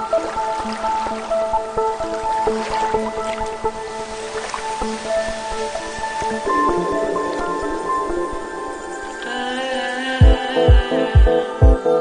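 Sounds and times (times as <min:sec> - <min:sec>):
held synth notes melody: 0:00.0 - 0:12.0.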